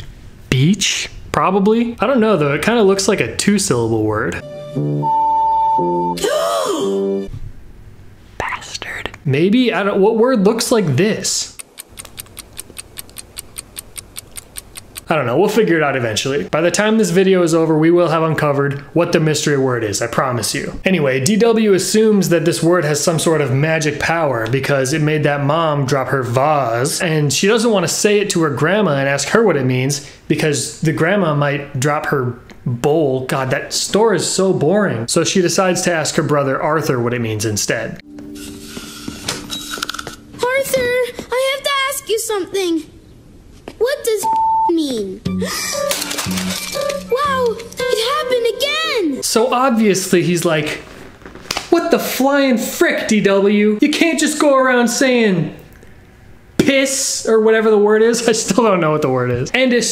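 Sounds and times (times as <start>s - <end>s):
light clicks: 11.6s - 15.1s
fast clock ticking: 11.6s - 15.2s
soft held music chord: 38.0s - 39.2s.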